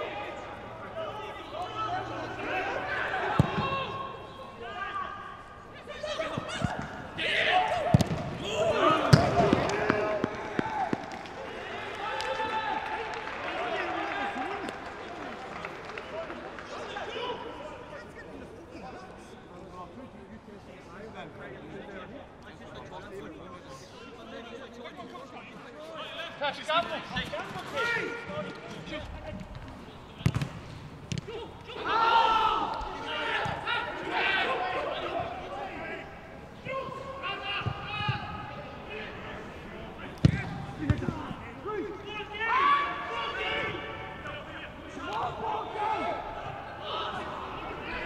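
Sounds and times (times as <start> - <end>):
footballers shouting: 0.0 - 17.9, 29.0 - 48.0
ball being kicked: 9.1 - 11.2, 40.2 - 41.2
football kick thud: 40.2 - 41.2.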